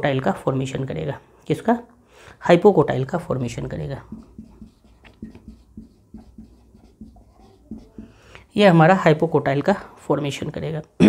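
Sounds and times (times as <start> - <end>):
pen writing on a surface: 3.3 - 8.4.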